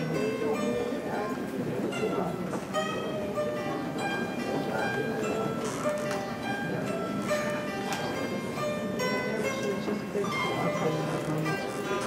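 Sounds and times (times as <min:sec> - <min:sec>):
plucked zither melody: 0:00.0 - 0:12.0.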